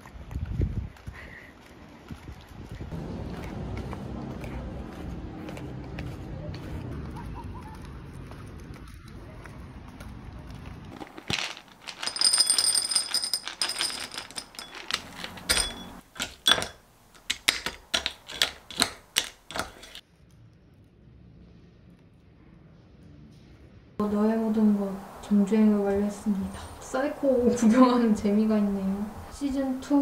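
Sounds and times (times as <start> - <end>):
spatula scraping ceramic bowl: 18.2 - 20.0.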